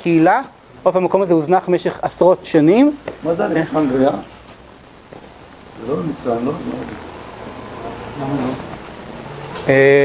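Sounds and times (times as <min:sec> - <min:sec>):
faint voices: 0:05.6 - 0:10.0.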